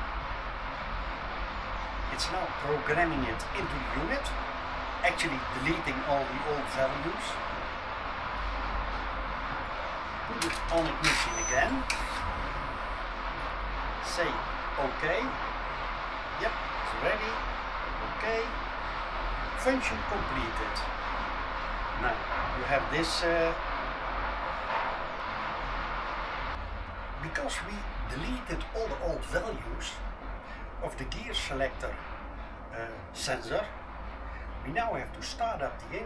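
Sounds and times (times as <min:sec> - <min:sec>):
steady low rumble: 0:00.0 - 0:36.0.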